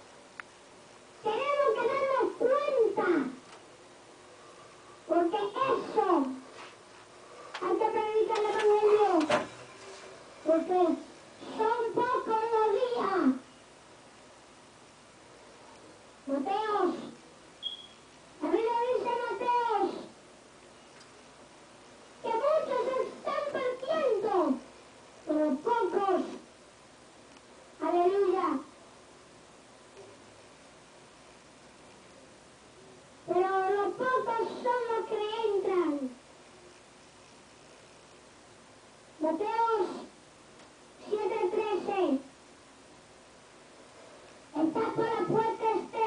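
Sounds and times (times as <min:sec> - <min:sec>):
boy's high-pitched voice: 0:01.2 - 0:03.4, 0:05.1 - 0:06.4, 0:07.6 - 0:09.4, 0:10.4 - 0:13.5, 0:16.3 - 0:17.2, 0:18.4 - 0:20.0, 0:22.2 - 0:24.7, 0:25.3 - 0:26.4, 0:27.8 - 0:28.7, 0:33.3 - 0:36.2, 0:39.2 - 0:40.1, 0:41.0 - 0:42.3, 0:44.6 - 0:46.0
boy calling out: 0:01.3 - 0:03.4, 0:16.3 - 0:17.0, 0:39.2 - 0:40.0.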